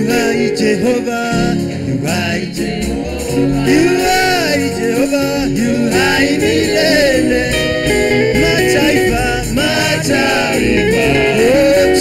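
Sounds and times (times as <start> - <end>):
electronic keyboard: 0.0 - 12.0
worship team singing: 0.0 - 12.0.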